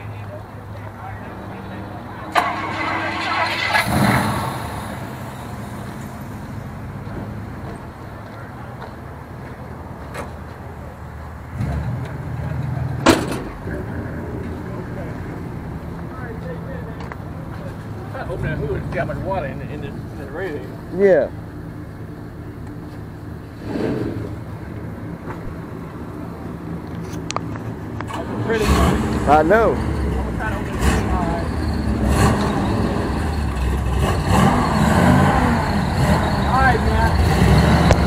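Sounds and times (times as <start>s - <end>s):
car engines idling: 0.0s - 38.0s.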